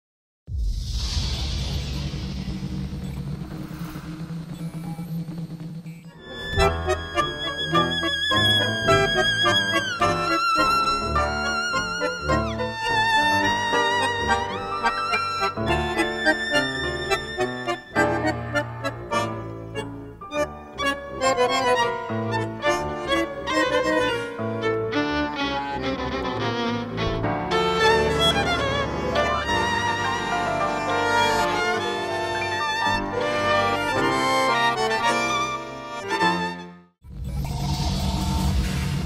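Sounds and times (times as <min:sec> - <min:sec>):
tango music on piano and violin: 0:06.2 - 0:36.8.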